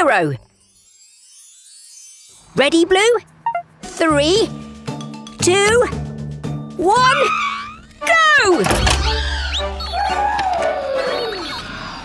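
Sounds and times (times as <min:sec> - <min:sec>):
cartoon soundtrack music: 0:03.5 - 0:12.0.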